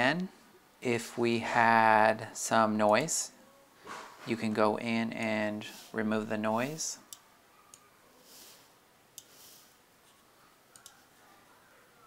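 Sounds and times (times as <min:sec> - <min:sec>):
faint computer clicks: 0:10.7 - 0:11.1.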